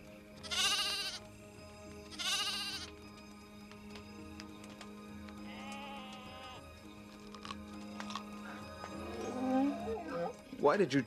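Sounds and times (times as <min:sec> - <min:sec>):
soft background music: 0:00.0 - 0:11.0
goat bleating: 0:00.4 - 0:01.2, 0:02.1 - 0:02.9, 0:05.4 - 0:06.6.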